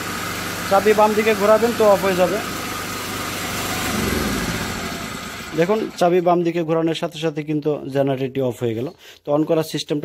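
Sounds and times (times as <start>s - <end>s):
generator engine running: 0.0s - 6.6s.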